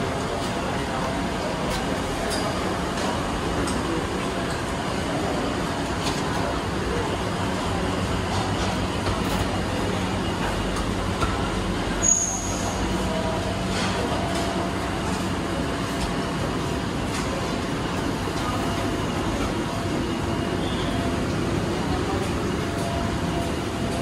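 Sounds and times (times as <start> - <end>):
fans and kitchen equipment humming: 0.0 - 24.0.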